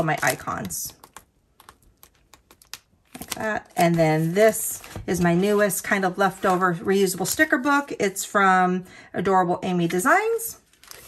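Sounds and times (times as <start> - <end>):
plastic pages clicking and tapping: 0.0 - 5.7.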